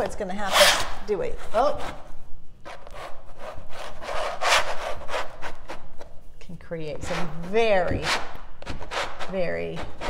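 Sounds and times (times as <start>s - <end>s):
metal trowel scraping canvas: 0.0s - 2.0s.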